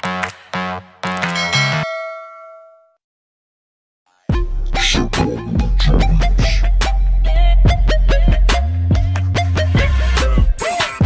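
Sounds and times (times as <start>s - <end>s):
bell-like ding: 1.3s - 3.0s.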